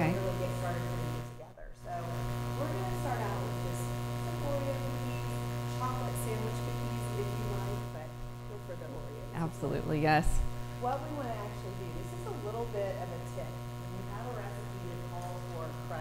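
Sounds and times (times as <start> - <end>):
electrical mains hum with buzz: 0.0 - 16.0.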